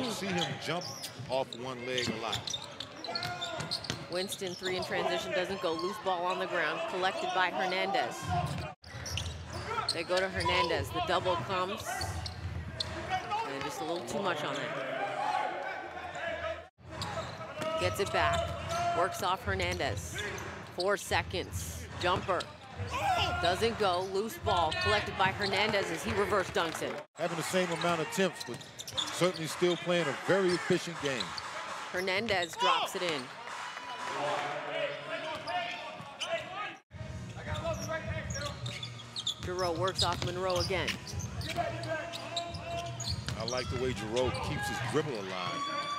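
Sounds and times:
voices in arena: 0:00.0 - 0:45.9
basketball bouncing on court: 0:02.0 - 0:04.2, 0:08.2 - 0:14.2, 0:39.4 - 0:41.8
ball bouncing on hardwood court: 0:39.4 - 0:41.2.

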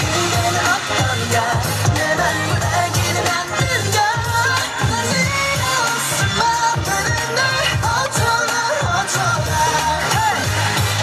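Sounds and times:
pop dance track over speakers: 0:00.0 - 0:11.0.

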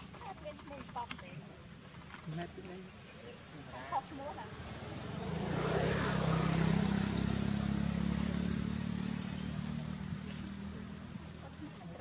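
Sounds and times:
vehicle engine passing by: 0:04.3 - 0:11.6.

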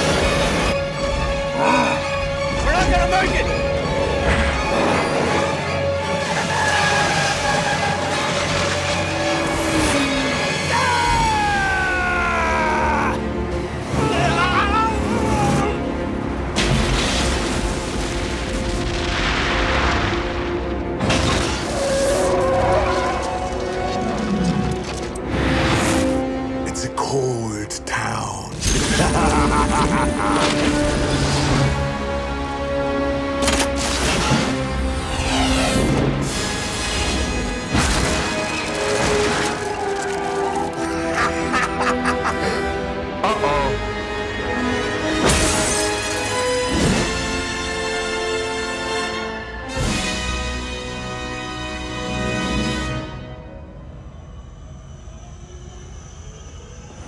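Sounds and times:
film score music: 0:00.0 - 0:57.0.

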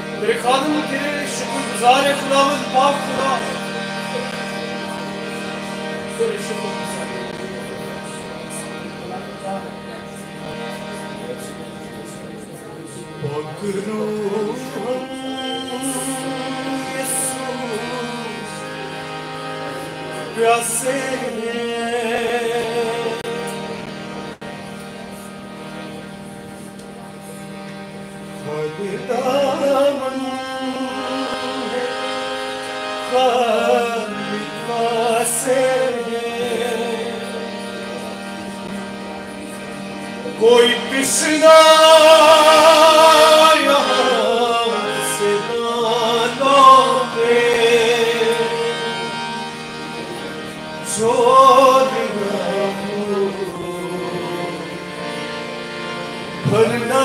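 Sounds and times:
harmonium sustained chord: 0:00.0 - 0:57.0.

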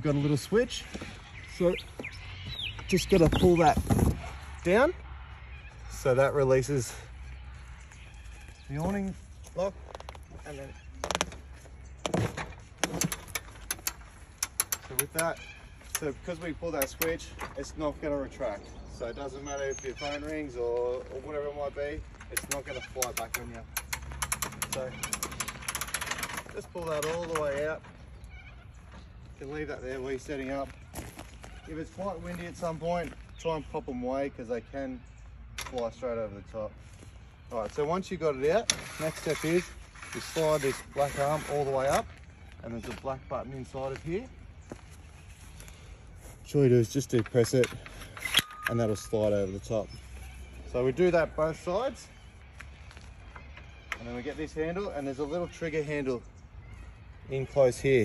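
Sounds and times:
awning roller ratchet clicks: 0:12.8 - 0:15.3, 0:22.3 - 0:27.5.

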